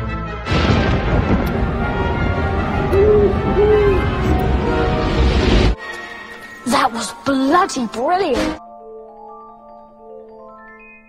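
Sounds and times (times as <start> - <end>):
orchestral music: 0.0 - 9.0
owl hooting: 3.0 - 4.0.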